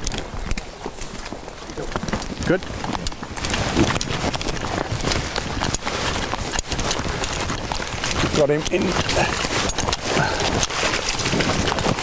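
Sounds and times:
footsteps rustling through long grass: 3.2s - 12.0s.

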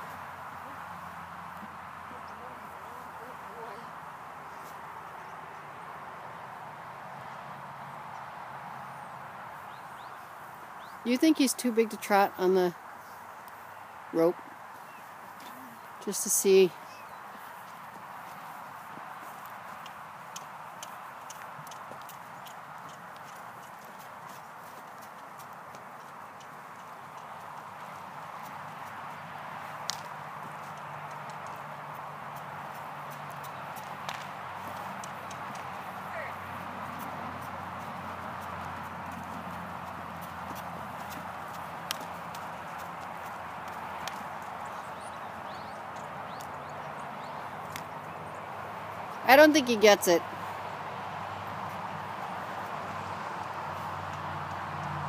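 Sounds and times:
hooves striking dirt: 0.0s - 55.0s.

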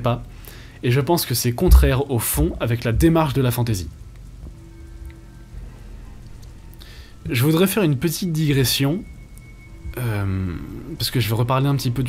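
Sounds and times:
low rumble: 1.6s - 11.4s
faint sustained musical tones: 1.6s - 12.0s.

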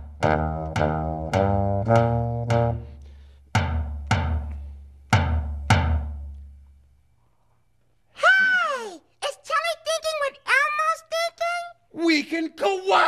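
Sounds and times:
small drum struck with mallet: 3.5s - 6.3s
person calling out: 8.2s - 9.1s, 12.6s - 13.0s.

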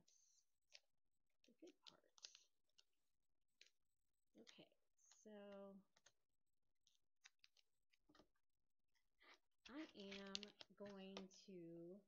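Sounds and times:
vinyl sheet rustling: 9.7s - 11.2s.

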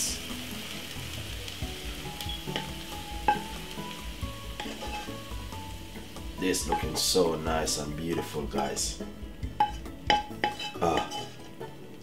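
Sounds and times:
cabbage sizzling: 0.0s - 12.0s
wooden spoon scraping pan: 4.6s - 5.3s, 9.6s - 11.6s
spoon knocking: 9.6s - 11.3s.

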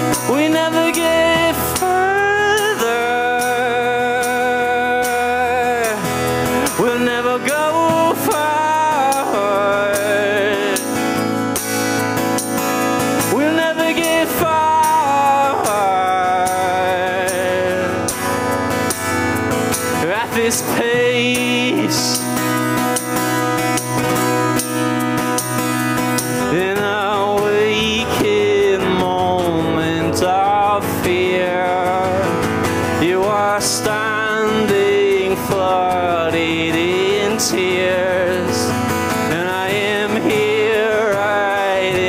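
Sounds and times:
acoustic guitar strumming: 0.0s - 42.0s.

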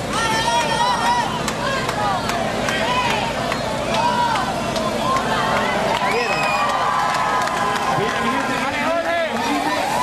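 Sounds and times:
crowd talking and calling out: 0.0s - 10.0s
people cheering: 0.0s - 10.0s.

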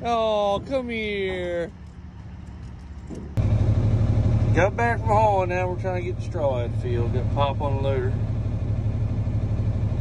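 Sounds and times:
tractor engine drone: 0.0s - 10.0s.

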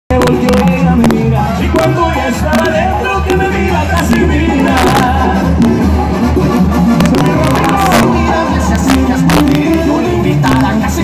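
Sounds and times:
brass band playing: 0.1s - 11.0s
tuba bass line: 0.1s - 11.0s.

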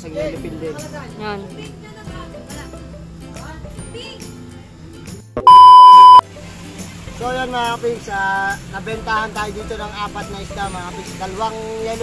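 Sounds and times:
electronic beep tone: 5.5s - 6.2s.

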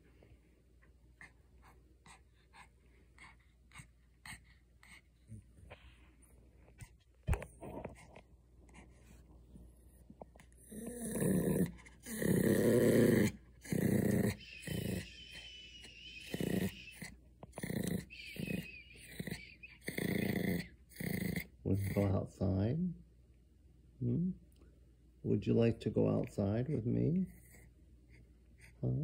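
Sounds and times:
dog growling through rubber toy: 10.6s - 22.1s.

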